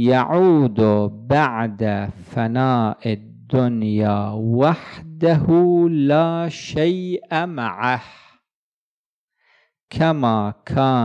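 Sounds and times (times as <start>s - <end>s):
man speaking: 0.0s - 8.3s, 9.9s - 11.0s
faint breath: 9.3s - 9.8s.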